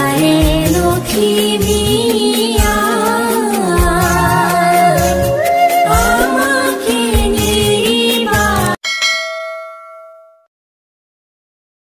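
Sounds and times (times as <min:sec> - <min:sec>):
bell-like ding: 0:08.8 - 0:10.5.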